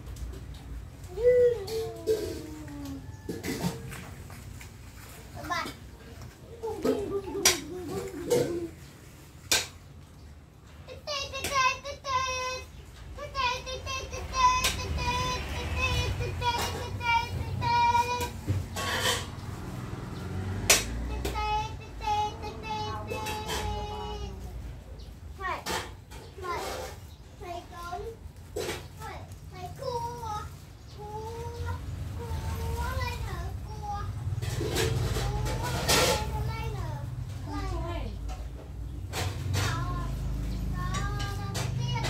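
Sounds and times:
child singing: 10.9 - 18.5, 21.0 - 24.6, 29.0 - 34.2, 35.0 - 37.8, 39.5 - 42.0.

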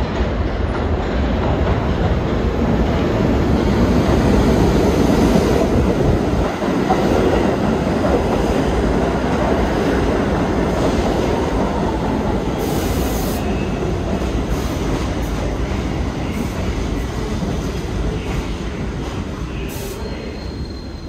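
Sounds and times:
subway train wheels rumbling: 0.0 - 21.0
high squeals of brakes: 19.4 - 21.0.

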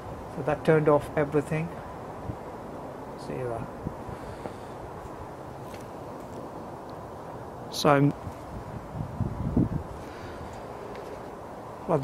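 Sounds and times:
steady low background noise: 0.0 - 12.0.

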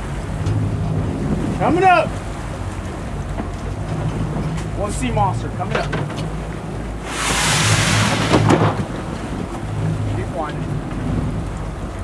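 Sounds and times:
boat engine humming: 0.0 - 12.0
loud rushing noise: 7.0 - 8.8.

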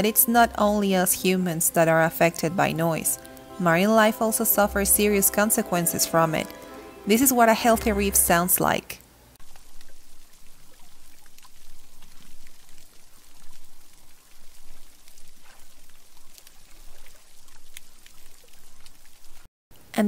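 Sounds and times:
reef crackle of clicks and pops: 9.4 - 19.5.

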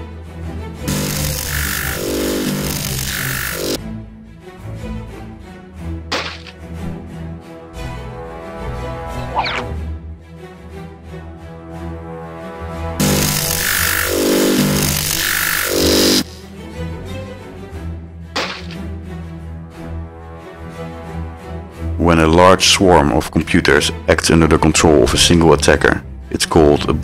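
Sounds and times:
low music bed: 0.0 - 27.0
hissing buzzing scanning effect: 0.9 - 3.8, 13.0 - 16.5
low hum: 13.0 - 16.4.

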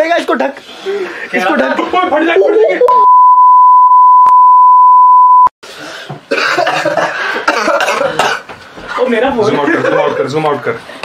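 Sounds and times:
high censor beep: 2.9 - 5.5
men coughing: 6.3 - 8.6.

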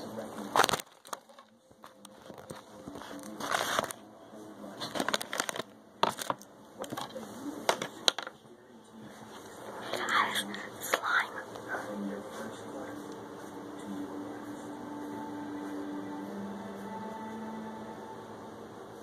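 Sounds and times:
close-up crinkling and crackling: 0.2 - 4.1, 4.7 - 8.1.

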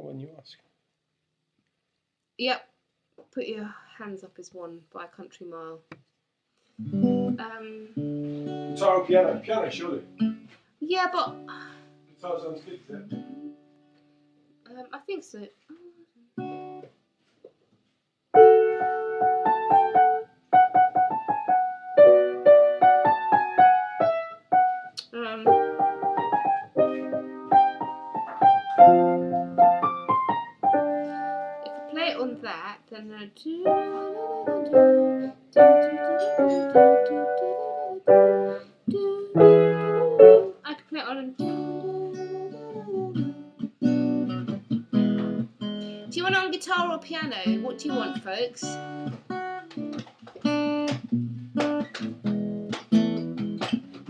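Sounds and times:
acoustic guitar chords strummed: 8.0 - 10.6, 41.4 - 54.0
piano playing: 18.4 - 32.4, 33.6 - 40.6.

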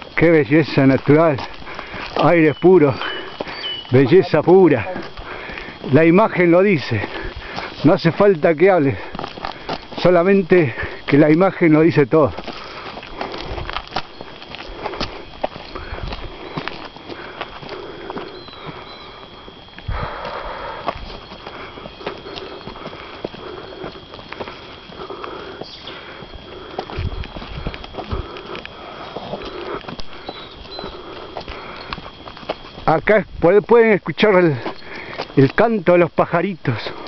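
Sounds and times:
footsteps on gravel road: 0.0 - 37.0
faint bird chirps: 2.4 - 4.3, 18.2 - 19.3, 29.5 - 31.1.

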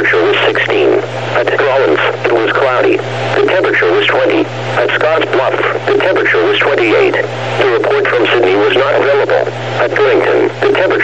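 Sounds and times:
radio broadcast voice: 0.0 - 11.0
steady low hum: 0.0 - 11.0.

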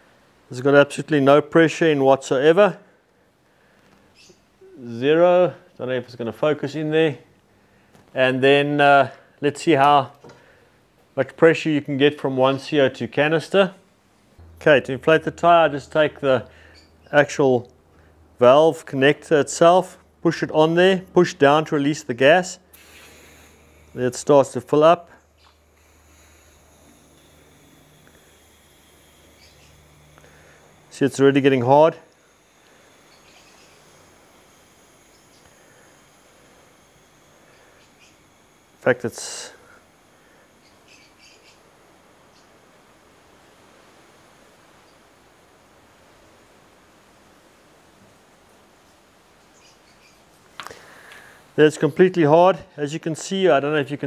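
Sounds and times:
gas cartridge hissing: 22.6 - 43.1, 50.5 - 51.6.

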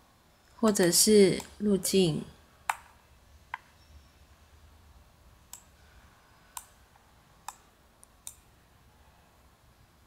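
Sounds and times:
faint low hum: 0.0 - 10.0
computer mouse clicking: 2.6 - 3.7, 5.5 - 5.8, 6.4 - 8.5.

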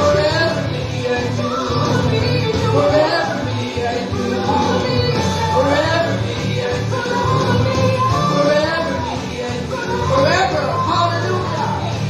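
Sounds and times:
woman singing into microphone: 0.0 - 11.9.

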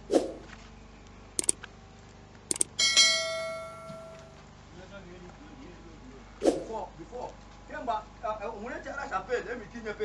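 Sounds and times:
double mouse click: 2.5 - 2.7
notification bell ding: 2.8 - 4.3.

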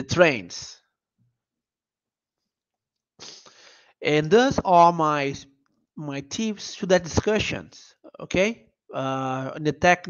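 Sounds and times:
man's sharp breath in: 3.2 - 4.0.

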